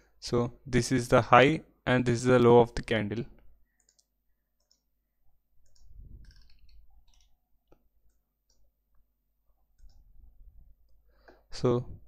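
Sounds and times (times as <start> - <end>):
computer mouse clicks: 3.7 - 4.9, 5.6 - 9.0, 9.6 - 10.1.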